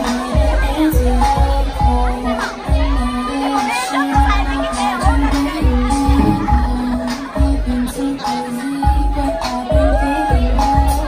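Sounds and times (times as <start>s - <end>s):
crowd talking and shouting: 0.0s - 11.0s
loud hip-hop music with heavy bass: 0.0s - 11.0s.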